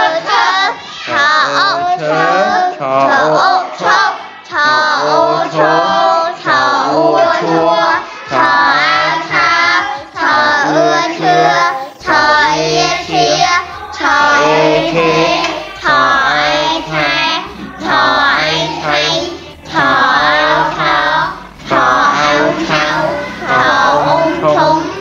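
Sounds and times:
child singing: 0.0s - 25.0s
backing music with bass line: 6.5s - 25.0s.

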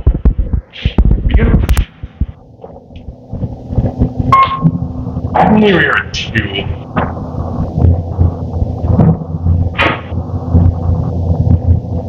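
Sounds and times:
elevator pump motor hum: 1.8s - 12.0s.

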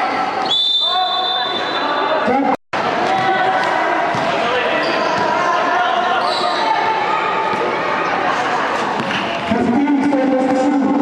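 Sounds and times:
basketball bouncing on court: 3.0s - 4.4s.

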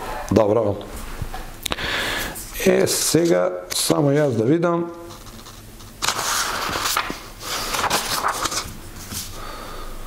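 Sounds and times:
paper sheets rustling: 5.1s - 9.4s.

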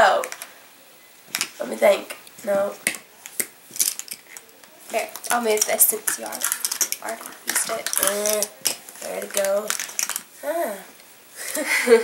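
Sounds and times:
rustling: 1.2s - 11.1s
makeup items clicking and clattering: 1.3s - 1.6s, 2.8s - 10.3s.

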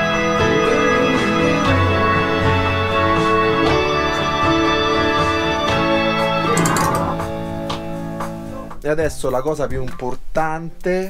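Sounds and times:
keyboard playing held chords: 0.0s - 7.6s.

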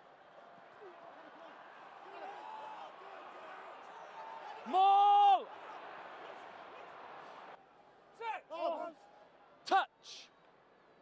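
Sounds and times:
loud held shout: 0.7s - 6.9s.

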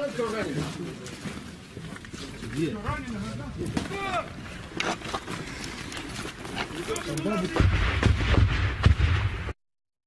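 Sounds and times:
gunfire bangs: 7.4s - 9.6s.

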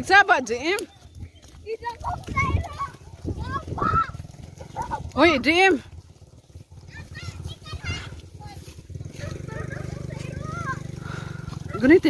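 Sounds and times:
people talking: 0.0s - 5.8s, 6.9s - 12.0s
low steady rumble: 0.4s - 12.0s.

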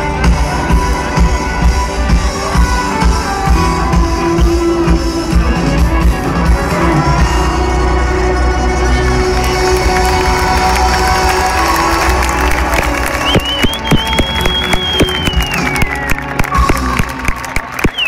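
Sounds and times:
electro-tango band playing: 0.0s - 18.0s
crowd cheering and clapping: 6.1s - 18.0s
long high whistle: 13.1s - 17.0s.

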